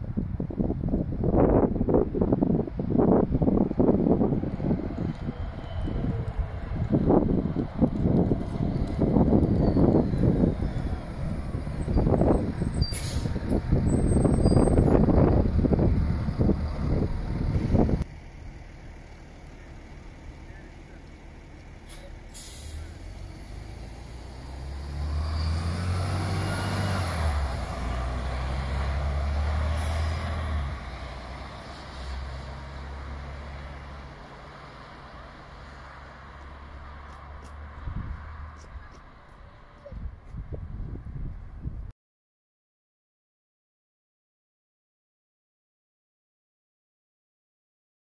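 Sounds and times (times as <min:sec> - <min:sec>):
wind noise on microphone: 0:00.0 - 0:18.1, 0:37.3 - 0:41.9
bus engine accelerating: 0:00.0 - 0:41.3
bus passing close by: 0:00.0 - 0:41.7
short sharp hiss: 0:21.9 - 0:22.9.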